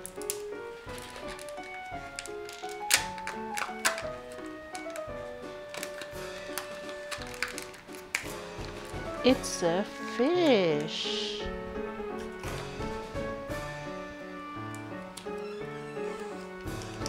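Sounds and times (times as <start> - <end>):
background music: 0.0 - 17.0
plastic and foil crackling: 0.0 - 17.0.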